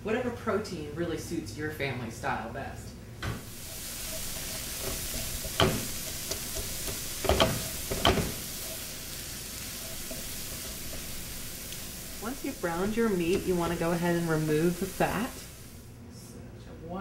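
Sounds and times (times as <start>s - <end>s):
meat sizzling in a frying pan: 3.4s - 15.9s
spatula knocking against pan: 4.1s - 8.9s.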